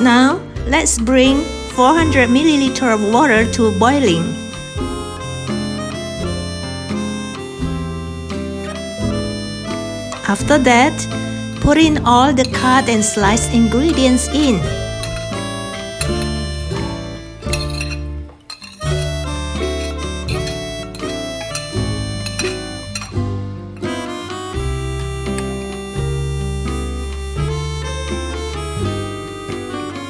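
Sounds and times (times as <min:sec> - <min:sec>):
instrumental music with bass line: 0:00.0 - 0:30.0.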